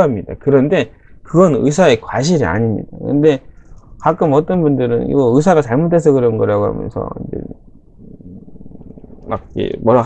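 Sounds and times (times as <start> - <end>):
man speaking: 0.0 - 7.7, 9.2 - 10.0
creaky throat rumble: 6.2 - 10.0.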